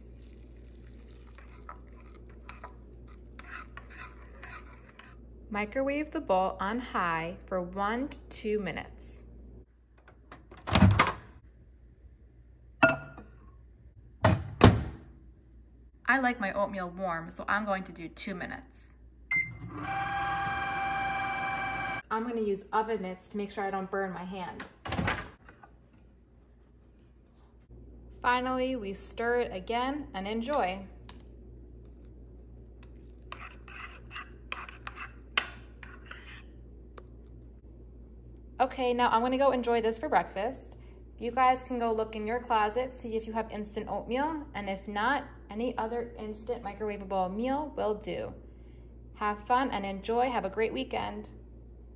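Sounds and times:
spoon scraping through oatmeal: 0.0 - 5.2, 31.8 - 37.8.

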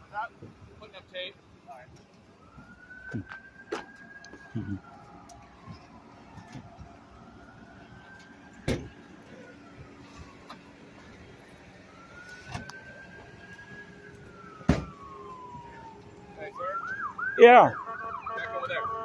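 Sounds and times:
emergency siren wailing: 1.8 - 19.0.

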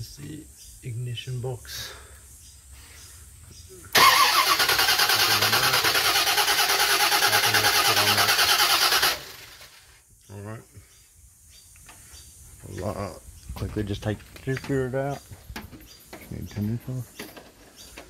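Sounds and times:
starter motor cranking engine: 3.9 - 9.9.

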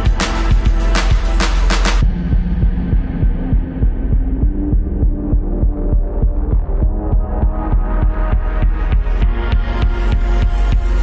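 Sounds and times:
deep bass: 0.0 - 11.0
dull synth chords: 0.0 - 11.0
muffled synthwave music: 0.0 - 11.0
pulsing kick drum: 0.0 - 11.0.

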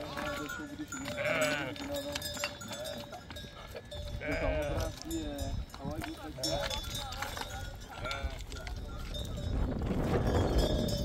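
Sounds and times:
sheep and goats bleating: 0.0 - 9.5.

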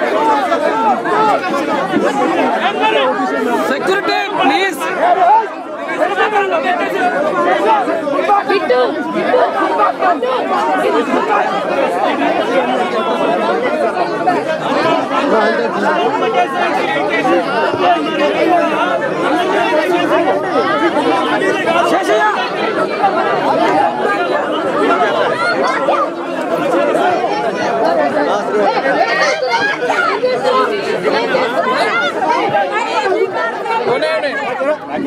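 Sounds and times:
crowd babble: 0.0 - 35.0.

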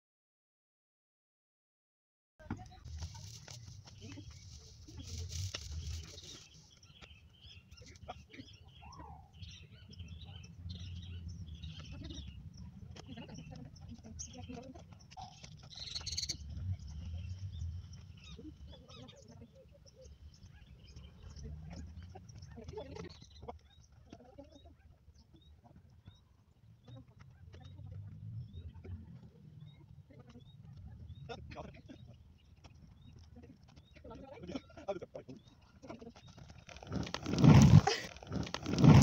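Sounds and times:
birds chirping: 2.4 - 39.0.

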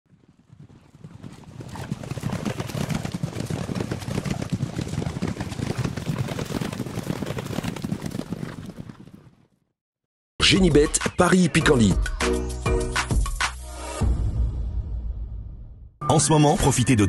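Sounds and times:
horses galloping hoofbeats: 0.1 - 9.6.

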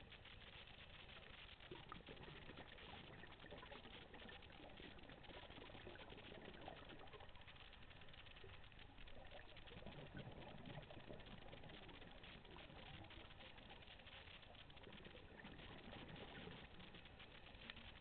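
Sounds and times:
underwater crackle of clicks: 0.0 - 18.0.

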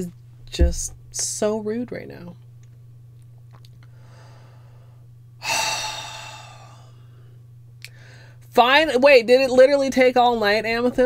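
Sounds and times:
steady low hum: 0.0 - 11.0
woman sighing: 5.4 - 7.1.

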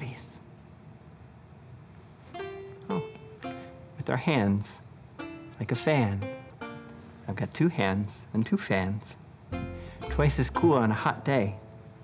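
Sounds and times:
plucked string instrument notes: 2.3 - 4.5, 5.2 - 7.4, 9.5 - 12.0.

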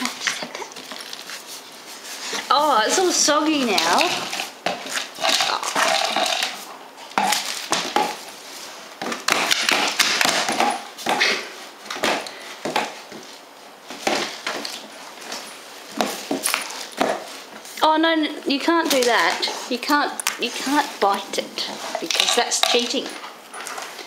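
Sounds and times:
scrapes and rustles: 0.0 - 17.8, 18.7 - 24.0.

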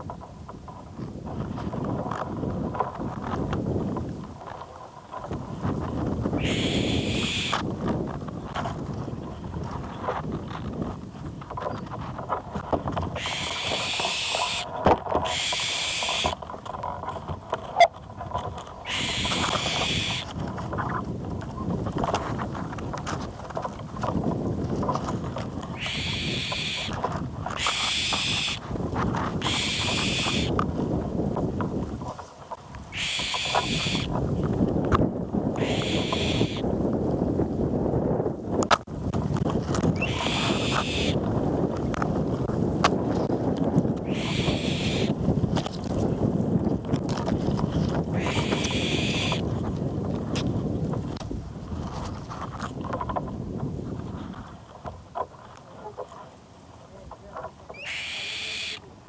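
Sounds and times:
leaves rustling: 0.0 - 38.2, 38.8 - 59.0
wind noise on microphone: 0.0 - 59.0.

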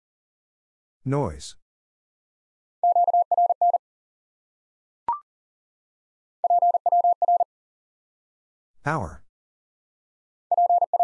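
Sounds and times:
morse code beeps: 2.8 - 3.8, 6.4 - 7.5, 10.5 - 11.0.

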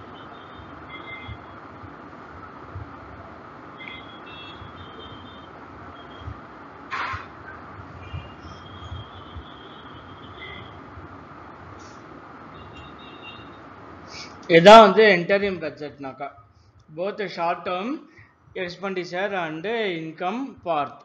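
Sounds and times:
low background noise: 0.0 - 21.0.

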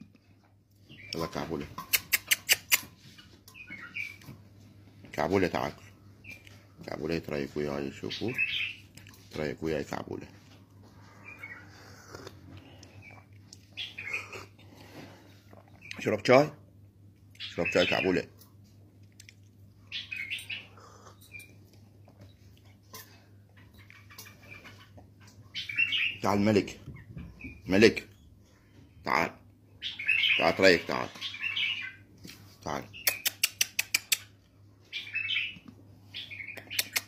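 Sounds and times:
bird chirping: 0.8 - 4.4, 7.7 - 9.2, 11.0 - 14.6, 19.8 - 22.4, 23.5 - 28.4, 29.8 - 32.1, 32.9 - 37.0
quick sharp clicks: 33.0 - 34.3.

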